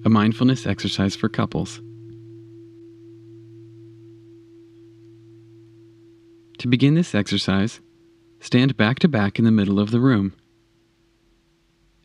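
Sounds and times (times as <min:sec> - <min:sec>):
low meditation drone: 0:00.0 - 0:11.4.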